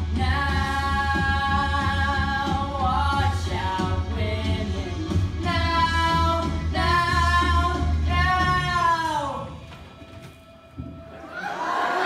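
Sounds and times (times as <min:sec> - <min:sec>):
backing track with steady bass: 0:00.0 - 0:09.6
crowd shouting and cheering: 0:11.1 - 0:12.0.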